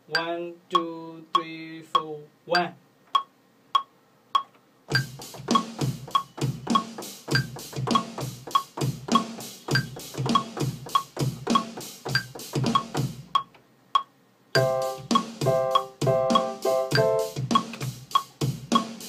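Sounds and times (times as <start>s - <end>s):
metronome clicking: 0.1s - 18.9s
electronic drum beat: 1.4s - 19.0s.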